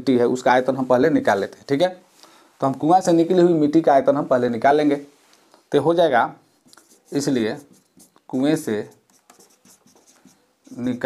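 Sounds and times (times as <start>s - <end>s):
marker pen writing on whiteboard: 6.6s - 11.0s.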